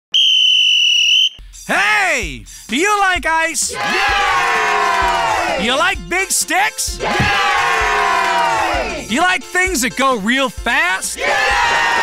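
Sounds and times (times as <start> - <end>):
high-pitched whistle-like tone: 0.1 - 1.4
person calling out: 1.7 - 2.4.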